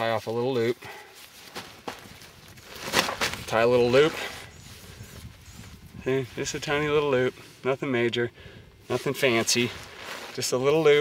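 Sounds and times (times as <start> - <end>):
nylon sack rustling on gravel: 0.0 - 4.8, 8.9 - 11.0.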